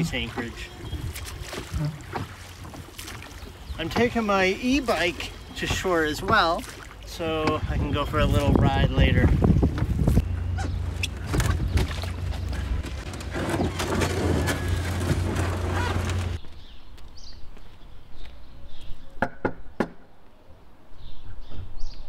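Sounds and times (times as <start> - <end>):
knocks from rowed dinghy: 0.0 - 3.2, 5.6 - 6.6
water splashing: 0.0 - 12.8
wind buffeting microphone: 7.3 - 13.1.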